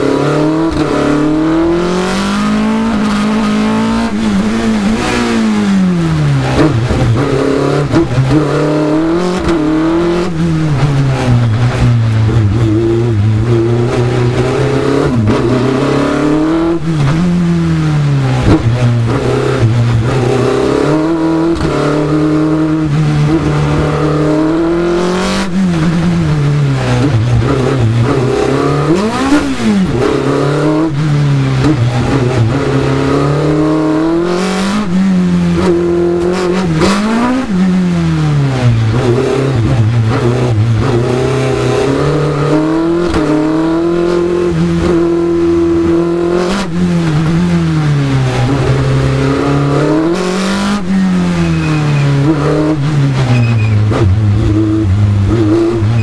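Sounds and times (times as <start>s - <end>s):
racing car engine revving: 0.0s - 56.0s.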